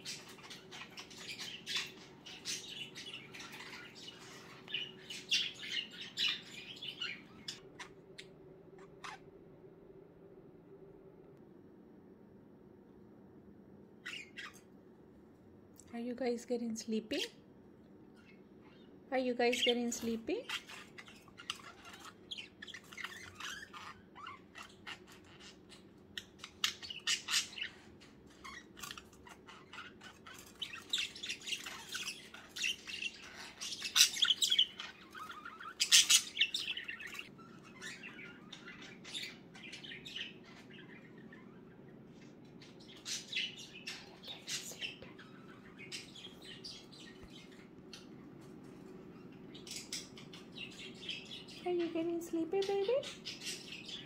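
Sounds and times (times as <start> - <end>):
budgerigars chirping: 0.0 - 9.3, 14.0 - 14.7, 18.1 - 52.0, 52.6 - 54.0.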